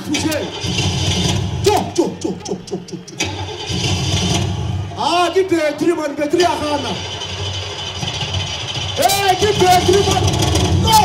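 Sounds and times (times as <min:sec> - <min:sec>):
voices: 0:00.0 - 0:00.8, 0:01.6 - 0:03.8, 0:04.7 - 0:11.0
imitated car engine spluttering: 0:00.0 - 0:05.0, 0:06.4 - 0:11.0.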